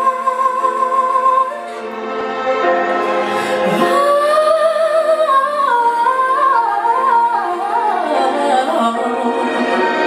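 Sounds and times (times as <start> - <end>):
woman singing ornamented line: 0.0 - 1.9, 3.3 - 10.0.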